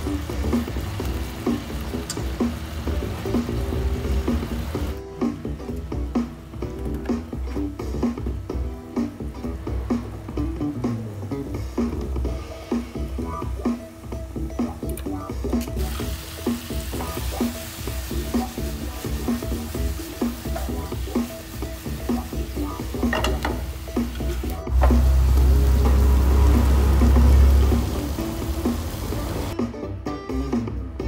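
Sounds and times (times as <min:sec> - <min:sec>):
fish sizzling in a hot pan: 0:00.0 - 0:05.0, 0:15.8 - 0:29.6
loud low rumble: 0:24.7 - 0:29.5.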